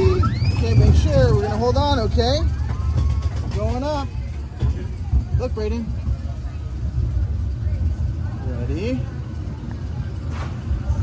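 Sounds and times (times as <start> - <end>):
roller coaster car rumbling: 0.0 - 11.0.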